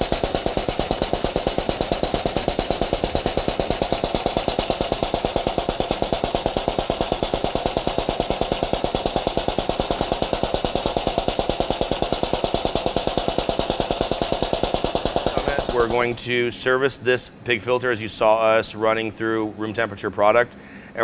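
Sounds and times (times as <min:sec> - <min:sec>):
diaphragm pump pulsing: 0:00.0 - 0:16.2.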